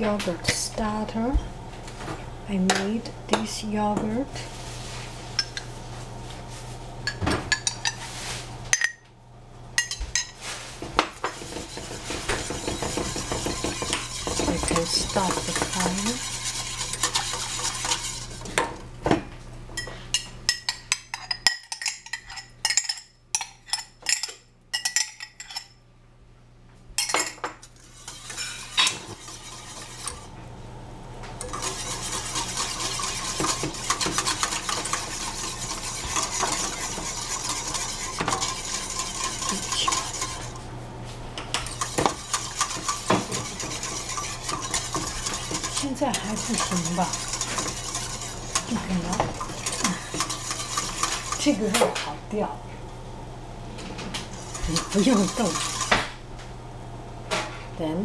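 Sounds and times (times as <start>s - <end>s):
utensil scraping pot: 9.8s - 18.8s, 27.0s - 30.3s, 31.4s - 40.7s, 41.4s - 52.2s, 53.8s - 56.1s
utensil clinking against pot: 31.4s - 40.6s, 41.4s - 52.1s, 54.4s - 56.0s.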